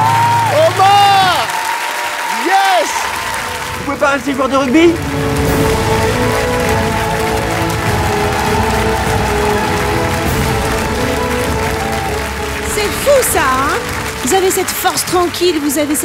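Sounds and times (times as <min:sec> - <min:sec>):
audience applauding: 0:00.0 - 0:16.0
sustained music chords: 0:03.2 - 0:15.9.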